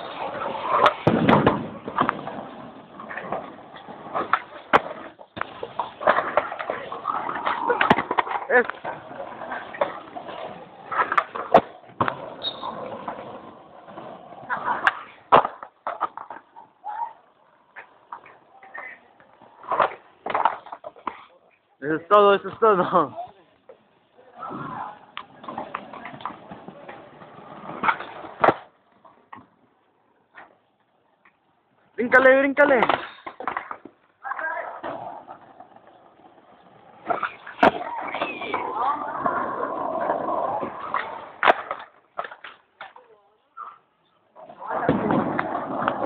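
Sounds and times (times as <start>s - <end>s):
skateboard rolling on concrete: 0.0s - 46.0s.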